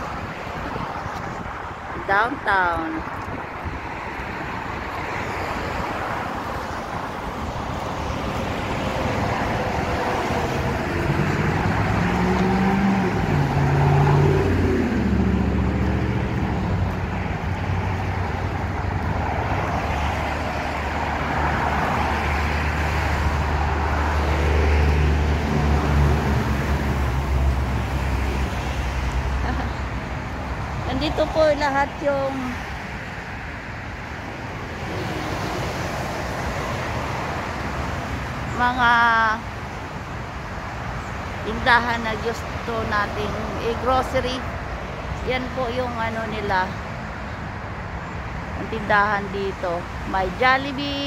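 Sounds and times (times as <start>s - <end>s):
expressway traffic: 0.0s - 51.0s
heavy vehicle engine: 6.8s - 32.6s.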